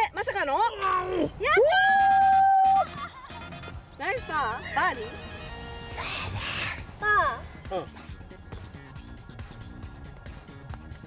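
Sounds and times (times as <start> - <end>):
woman's drawn-out cry: 1.6 - 2.9.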